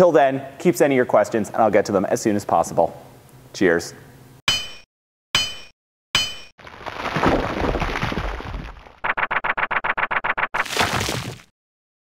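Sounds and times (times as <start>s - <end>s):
ringing metallic clang: 4.5s - 6.5s.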